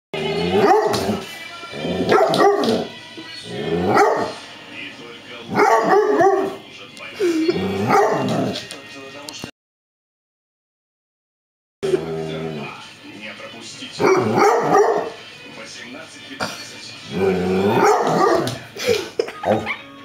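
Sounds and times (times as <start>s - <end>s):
dog vocalizing: 7.5s - 8.6s, 14.0s - 15.1s, 17.1s - 18.6s.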